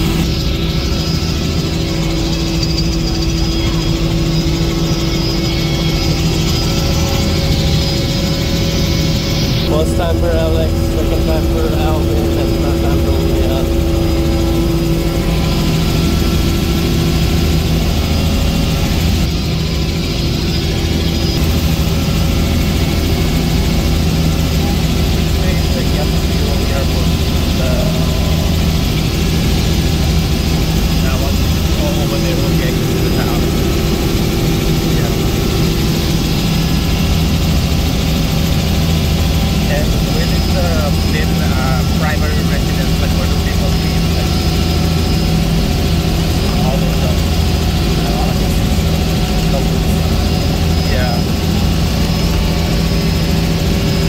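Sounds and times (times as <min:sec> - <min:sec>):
helicopter engine and rotor droning: 0:00.0 - 0:54.0.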